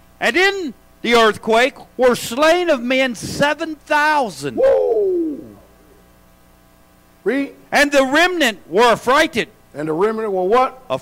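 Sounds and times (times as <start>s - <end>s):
faint steady hum: 0.0s - 11.0s
man exclaiming whoa: 4.4s - 5.6s.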